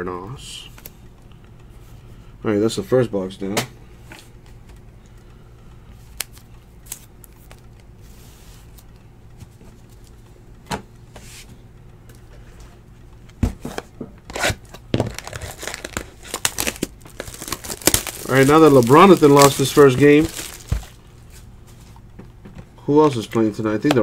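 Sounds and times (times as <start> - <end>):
plastic wrap crinkling and tearing: 14.3 - 21.0.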